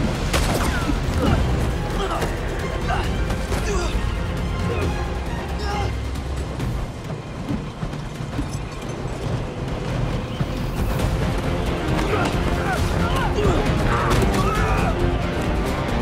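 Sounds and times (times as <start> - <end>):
trailer music: 0.0 - 16.0.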